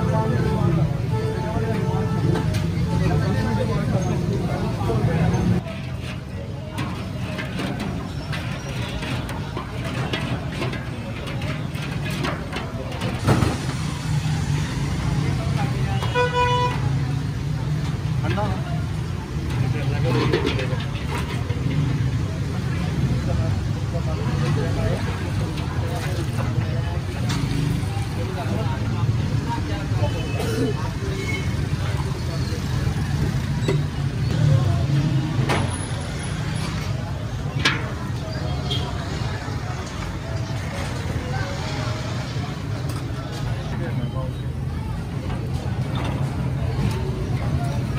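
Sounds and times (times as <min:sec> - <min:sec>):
street rumble: 0:00.0 - 0:47.9
vehicle horn: 0:16.0 - 0:16.8.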